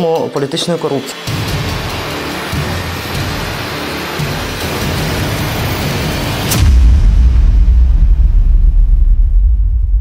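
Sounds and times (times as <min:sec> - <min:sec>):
deep low boom rumble: 0:06.3 - 0:10.0.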